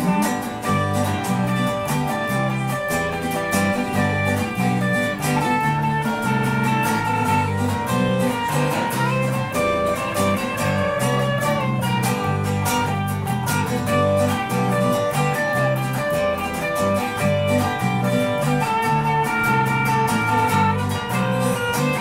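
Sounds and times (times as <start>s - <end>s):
guitar melody bending in pitch: 0.0s - 22.0s
guitar strumming: 0.0s - 22.0s
low bass notes: 0.0s - 22.0s.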